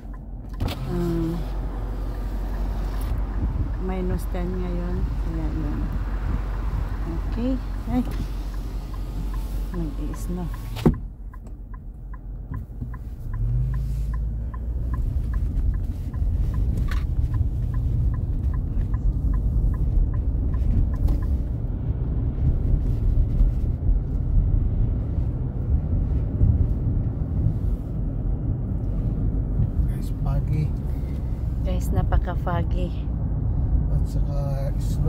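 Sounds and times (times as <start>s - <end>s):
car engine and tyres rumbling: 0.0s - 35.0s
turn signal ticking: 0.0s - 35.0s.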